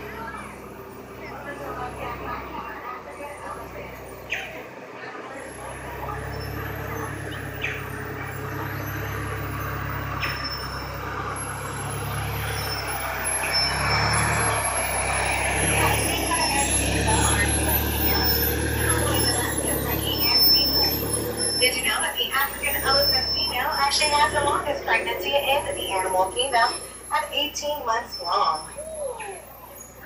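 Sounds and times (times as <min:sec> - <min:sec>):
faint voices: 0:00.0 - 0:30.0
motor vehicle humming: 0:00.0 - 0:30.0.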